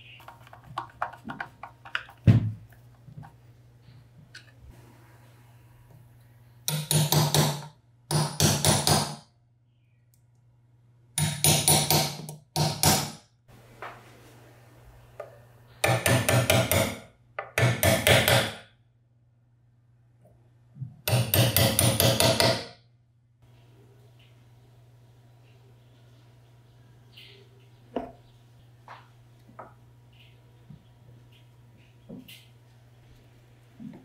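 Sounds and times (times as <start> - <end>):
small hammer tapping metal punch: 6.7 - 9.2, 21.1 - 22.7.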